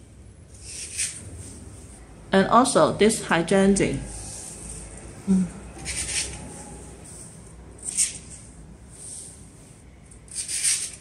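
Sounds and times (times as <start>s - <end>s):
person humming: 5.3s - 5.6s.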